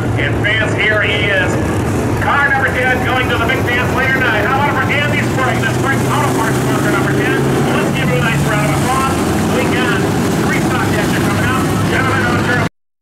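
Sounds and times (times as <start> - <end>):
announcer over public address: 0.0 - 12.7
race car engine idling: 0.0 - 12.7.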